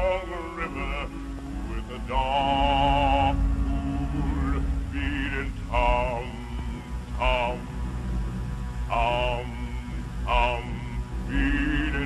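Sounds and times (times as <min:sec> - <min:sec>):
low steady hum: 0:00.0 - 0:12.0
man chanting a syllable: 0:08.9 - 0:12.0.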